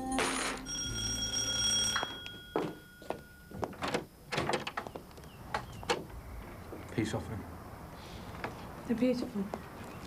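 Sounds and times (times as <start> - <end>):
bell-like ringing tone: 0.0 - 3.6
door being unlatched and opened: 3.6 - 4.9.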